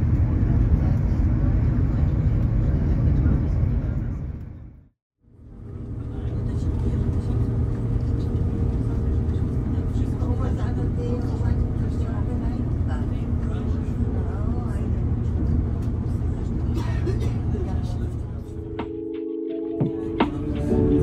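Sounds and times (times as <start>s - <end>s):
train rumbling on track: 0.0s - 18.9s, 19.8s - 21.0s.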